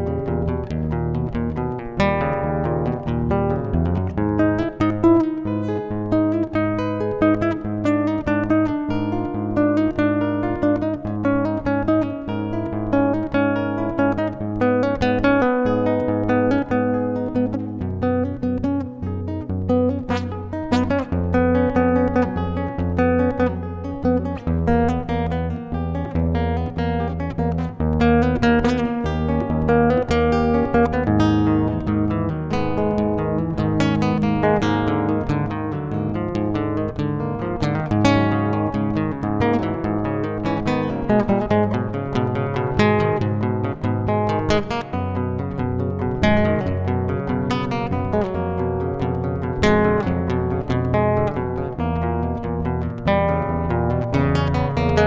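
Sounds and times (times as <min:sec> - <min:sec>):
plucked and strummed guitar: 0:00.0 - 0:55.0.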